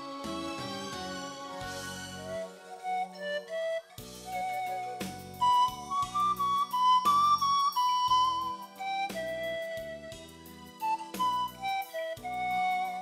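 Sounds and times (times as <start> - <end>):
instrumental accompaniment with bass: 0.0 - 13.0
pan flute melody: 0.0 - 13.0.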